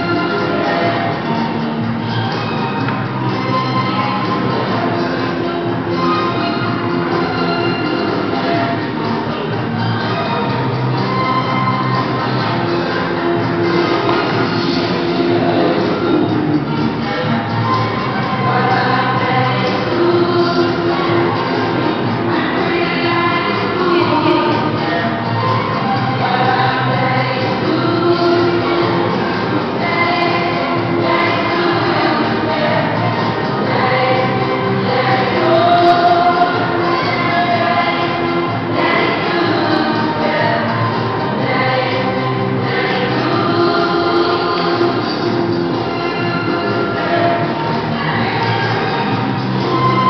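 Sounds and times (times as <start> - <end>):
instrumental backing music: 0.0 - 50.0
steady accompaniment: 0.0 - 50.0.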